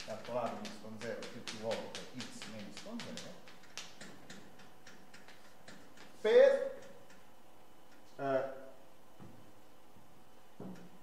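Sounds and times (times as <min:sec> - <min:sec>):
chalk clicking on blackboard: 0:00.0 - 0:07.3.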